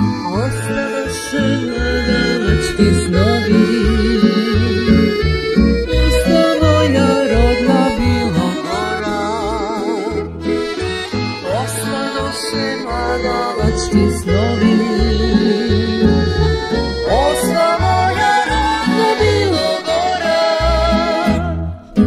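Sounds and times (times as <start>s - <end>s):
accordion: 0.0s - 22.0s
folk ensemble playing: 0.0s - 22.0s
plucked bass line: 0.0s - 22.0s.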